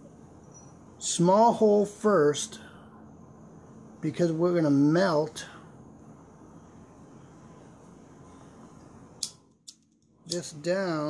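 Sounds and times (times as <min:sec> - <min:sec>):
faint room noise: 0:00.0 - 0:11.0
lighter clicking: 0:09.2 - 0:10.4.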